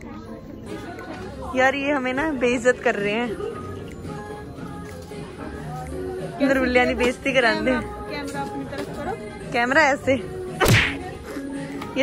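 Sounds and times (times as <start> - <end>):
sharp whip-like swish: 10.6 - 11.0.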